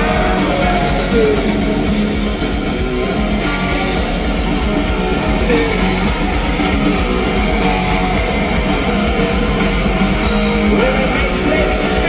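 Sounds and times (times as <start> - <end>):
rock band with electric guitars: 0.0 - 12.0.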